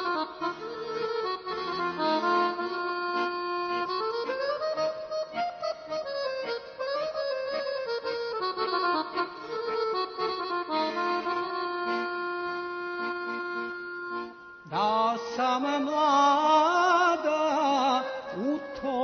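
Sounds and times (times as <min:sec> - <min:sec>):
accordion melody: 0:00.0 - 0:19.0.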